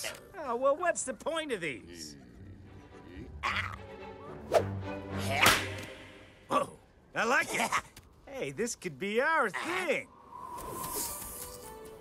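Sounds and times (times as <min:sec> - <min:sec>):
cartoon slap: 0:05.3 - 0:06.1.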